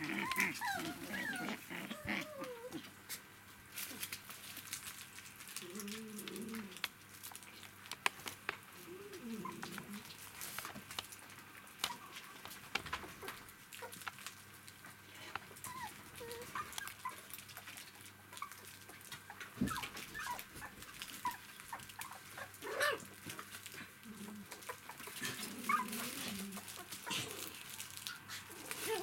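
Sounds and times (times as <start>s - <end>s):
puppies squeaking and whining: 0.0s - 2.8s, 15.6s - 17.3s, 18.3s - 22.8s, 24.4s - 29.0s
paws and toys scuffling on floor: 0.0s - 29.0s.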